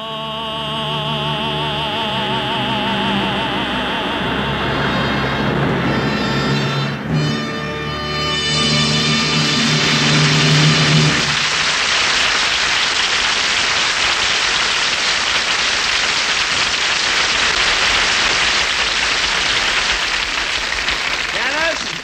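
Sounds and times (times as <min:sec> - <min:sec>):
orchestra music: 0:00.5 - 0:11.7
audience applause: 0:04.6 - 0:22.0.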